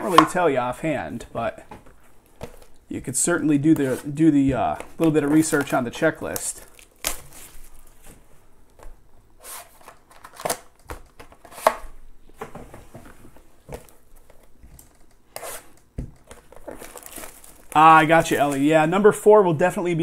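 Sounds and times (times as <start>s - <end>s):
cards and boxes handled on table: 1.7s - 2.8s, 3.6s - 18.6s.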